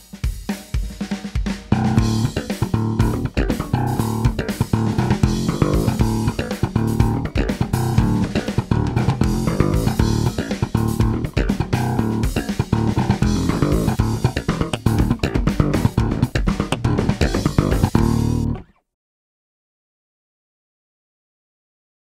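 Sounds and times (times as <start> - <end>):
electric bass played with fingers: 1.7 - 18.8.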